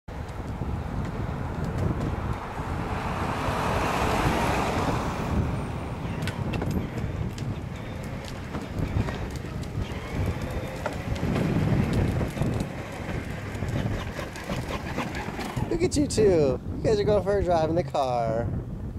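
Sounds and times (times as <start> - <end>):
wind buffeting microphone: 0.1 - 18.9
toy car wheels rattling on concrete: 6.2 - 16.1.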